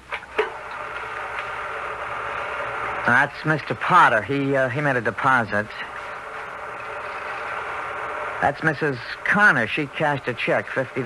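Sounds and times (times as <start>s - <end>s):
film projector running: 0.0s - 11.0s
projector clicks: 0.1s - 3.1s.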